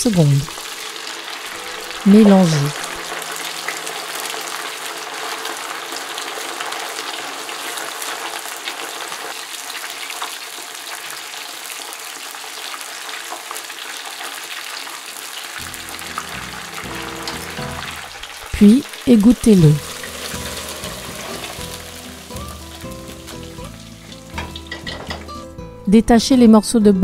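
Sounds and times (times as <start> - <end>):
meat deep-frying in hot oil: 0.1 - 25.4.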